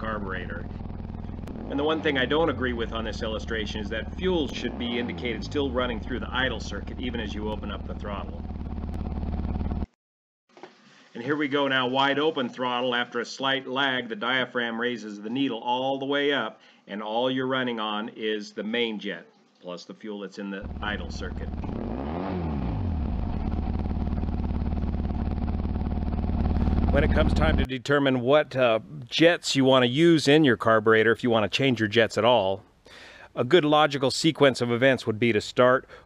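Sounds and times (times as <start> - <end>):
engine idling: 0.0 - 9.9, 20.6 - 27.7.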